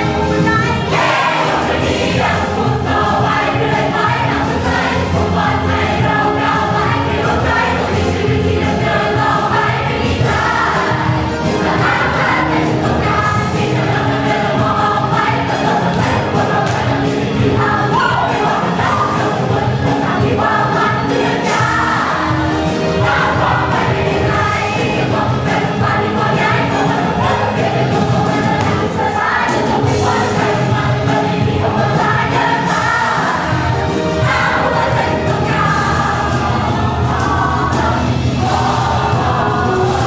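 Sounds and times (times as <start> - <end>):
choir singing together: 0.0 - 40.0
loud musical accompaniment: 0.0 - 40.0.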